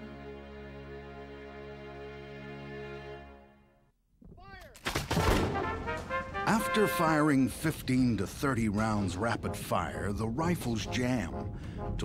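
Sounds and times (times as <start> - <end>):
soft music: 0.0 - 3.9, 5.6 - 12.0.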